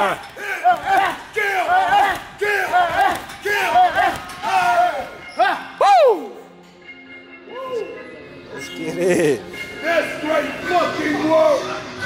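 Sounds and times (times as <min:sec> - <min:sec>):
men shouting: 0:00.0 - 0:06.3.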